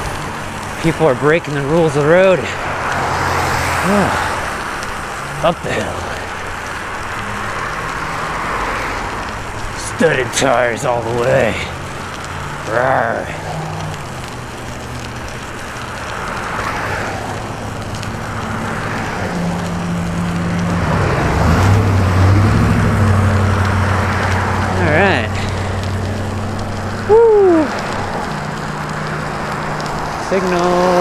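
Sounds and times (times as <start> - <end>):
bicycle tyres hissing on wet pavement: 0.0 - 31.0
rider vocal sounds: 0.7 - 4.5, 5.2 - 6.5, 9.7 - 14.3.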